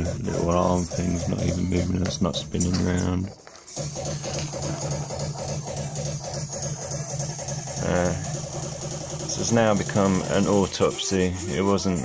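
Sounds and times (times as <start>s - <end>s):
spindle motor pulsing buzz: 0.0s - 12.0s.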